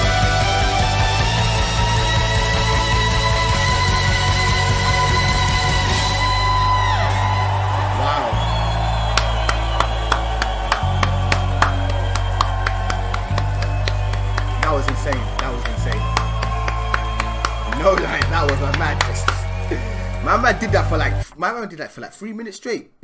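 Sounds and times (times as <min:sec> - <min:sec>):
rock band with orchestra: 0:00.0 - 0:07.2
crowd cheering and whooping: 0:00.0 - 0:21.2
hand claps: 0:07.2 - 0:20.6.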